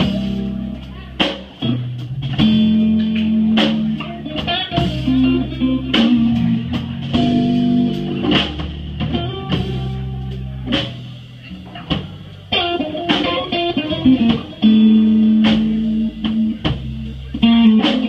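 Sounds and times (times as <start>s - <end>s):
bass guitar: 0.0s - 18.0s
drum kit: 0.0s - 18.0s
electric guitar lead lines: 0.0s - 18.0s.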